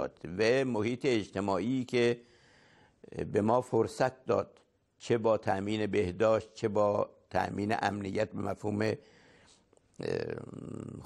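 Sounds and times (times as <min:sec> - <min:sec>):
man breathing in: 0:02.2 - 0:03.0, 0:09.0 - 0:09.7.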